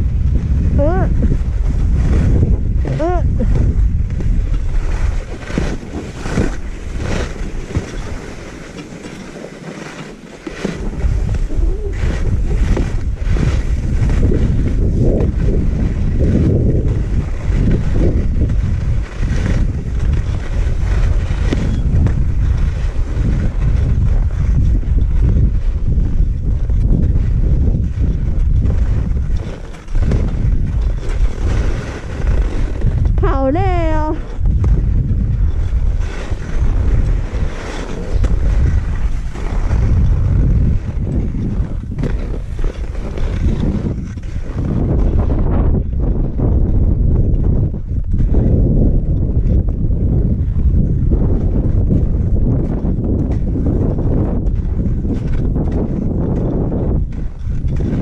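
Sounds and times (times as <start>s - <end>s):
skis scraping on snow: 0.0s - 58.0s
wind buffeting microphone: 0.0s - 58.0s.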